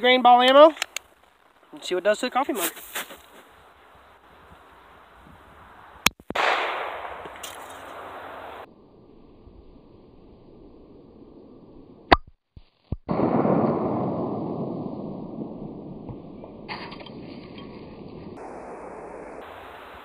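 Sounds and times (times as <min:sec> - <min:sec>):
pistol shots: 0:06.3 - 0:08.7.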